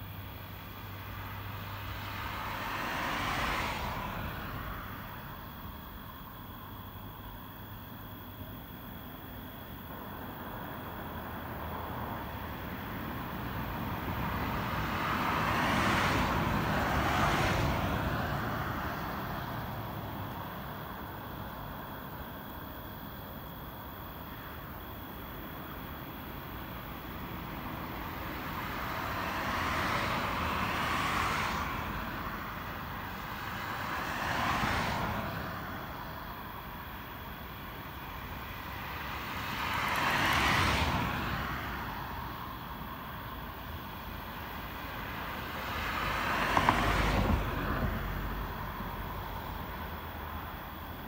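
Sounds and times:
vehicles passing by: 0:00.0 - 0:51.0.

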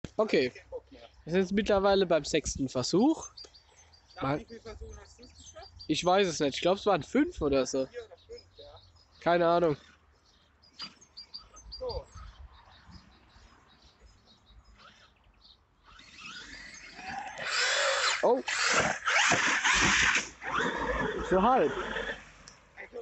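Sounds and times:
electric toy truck motor whining: 0:15.8 - 0:22.5.

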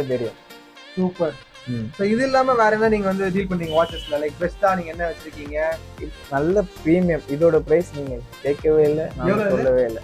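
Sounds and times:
men talking: 0:00.0 - 0:00.4, 0:01.0 - 0:10.0
background music: 0:00.0 - 0:10.0.

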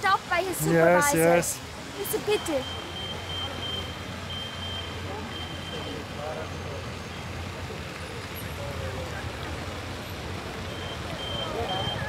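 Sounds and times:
low traffic hum: 0:00.0 - 0:12.0.

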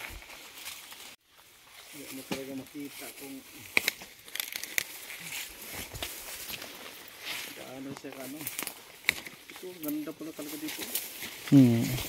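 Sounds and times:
dry grass and leaves crackling: 0:00.0 - 0:12.0
voice murmur: 0:11.5 - 0:12.0.

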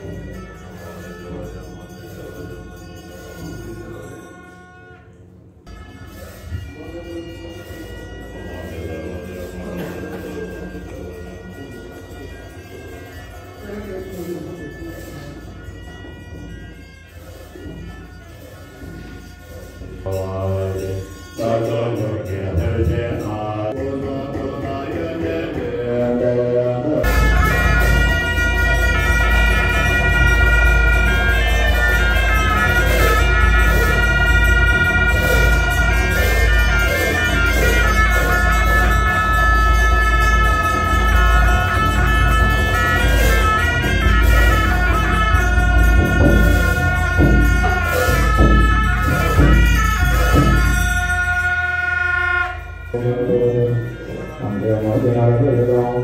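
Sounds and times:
double-reed horns wavering notes: 0:00.0 - 0:56.0.

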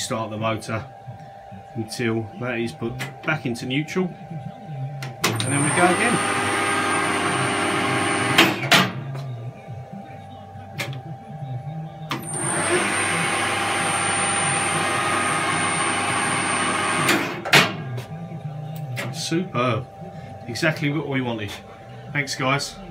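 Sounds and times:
lathe motor high whine: 0:00.0 - 0:08.7, 0:12.0 - 0:17.5.

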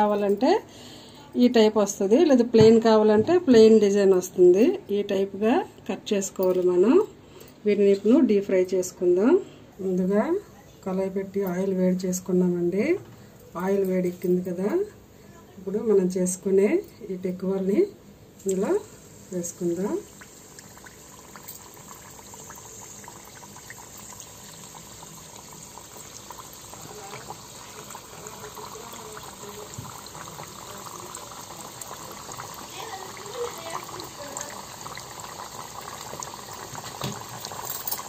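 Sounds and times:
dough deep-frying in hot oil: 0:15.7 - 0:38.0.

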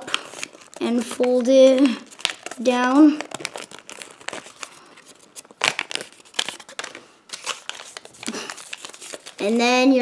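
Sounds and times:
paper crinkling: 0:00.0 - 0:09.9.

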